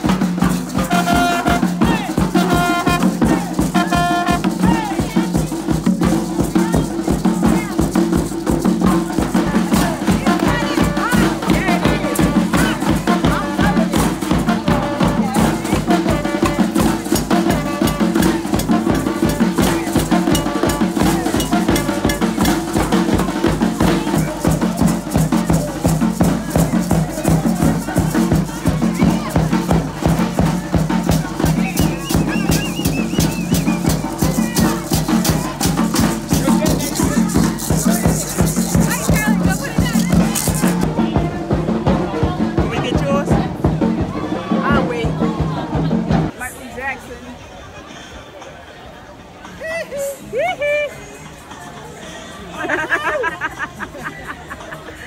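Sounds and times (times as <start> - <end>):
barrel drum: 0.0 - 46.4
rattling hand percussion: 0.0 - 46.4
trombone playing: 0.4 - 4.8.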